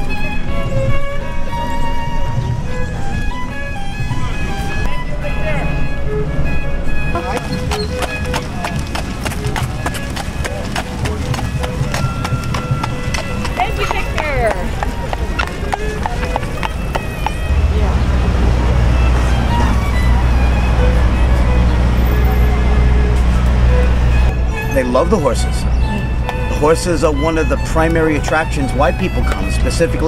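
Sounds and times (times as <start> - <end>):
horse hooves on asphalt: 7.2 - 30.0
low rumble: 17.4 - 24.5.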